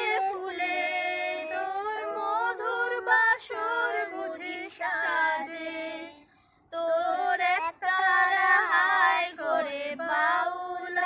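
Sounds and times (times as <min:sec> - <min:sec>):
woman and boys singing: 0:00.0 - 0:11.0.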